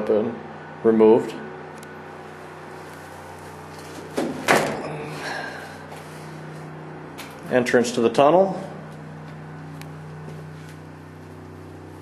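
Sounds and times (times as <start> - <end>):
generator humming: 0.0 - 12.0
sharp knocks: 4.0 - 4.9.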